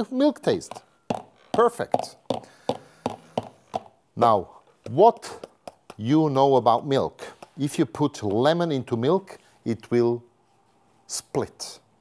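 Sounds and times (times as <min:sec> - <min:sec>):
stick blender tapping jug rim: 0:00.6 - 0:03.9, 0:04.8 - 0:06.1.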